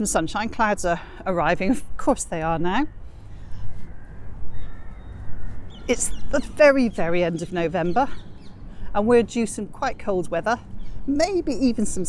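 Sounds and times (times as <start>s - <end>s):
bird calling faintly: 2.8s - 8.6s.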